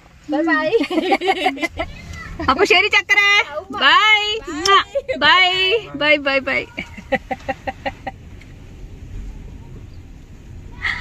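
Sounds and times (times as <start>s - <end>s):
low rumble inside a car: 0.0s - 11.0s.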